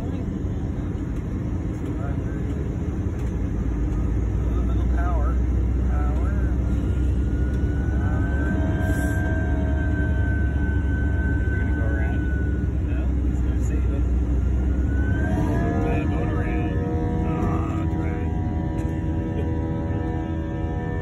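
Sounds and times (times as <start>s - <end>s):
aircraft engine whine: 0.0s - 21.0s
aircraft engines rumbling: 0.0s - 21.0s.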